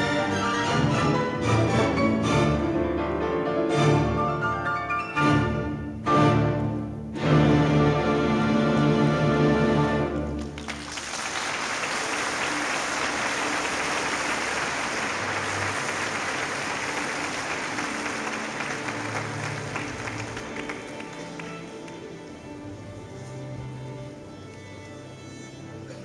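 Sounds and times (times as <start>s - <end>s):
audience applause: 10.3s - 22.1s.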